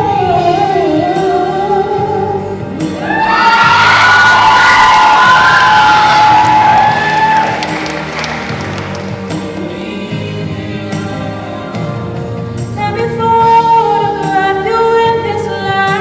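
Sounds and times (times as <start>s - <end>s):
musical accompaniment: 0.0s - 16.0s
audience cheering and applause: 3.0s - 9.8s.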